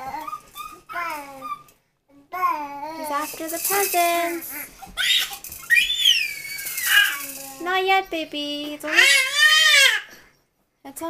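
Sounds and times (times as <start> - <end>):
toddler squealing: 0.0 - 1.7, 4.5 - 7.5, 8.9 - 10.1.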